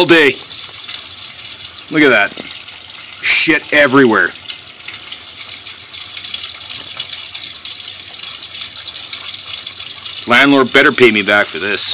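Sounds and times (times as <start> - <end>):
water rushing through drain pipe: 0.0 - 11.9.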